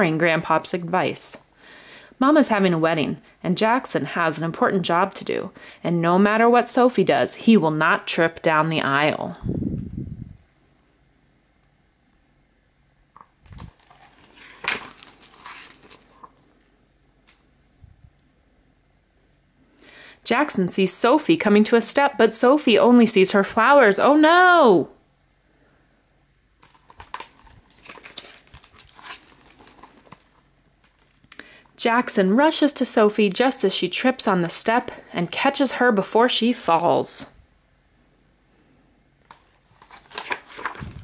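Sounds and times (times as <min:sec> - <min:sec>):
book page turning: 0:13.2 - 0:16.4, 0:26.6 - 0:31.3, 0:39.2 - 0:41.0.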